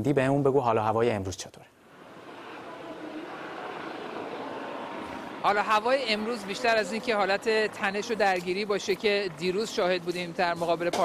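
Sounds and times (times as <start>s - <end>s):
distant traffic: 1.7s - 11.0s
crowd noise: 1.8s - 11.0s.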